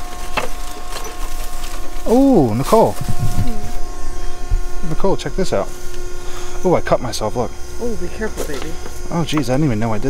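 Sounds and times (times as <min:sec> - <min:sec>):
rustling plastic and paper: 0:00.0 - 0:03.8
faint steady hum: 0:00.0 - 0:10.0.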